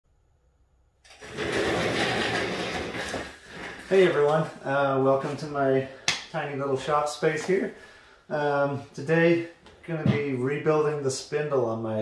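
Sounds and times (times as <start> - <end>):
rustling and scraping: 1.1 - 5.6
man speaking: 3.9 - 12.0.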